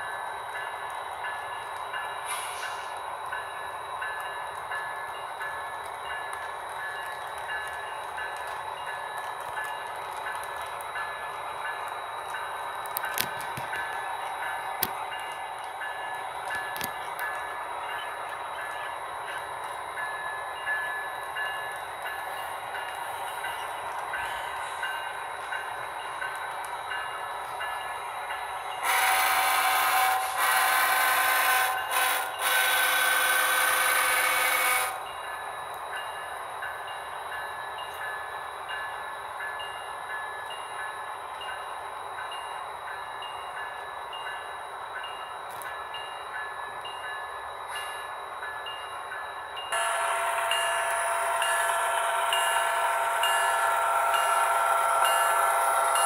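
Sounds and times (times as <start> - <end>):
model train running: 0.0 - 56.0
steady multi-tone horn: 49.8 - 55.9
chime-like horn blasts: 49.8 - 56.0.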